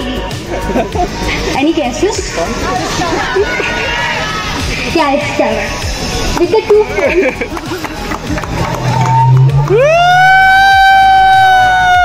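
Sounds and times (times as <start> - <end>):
person whooping: 8.8 - 12.0.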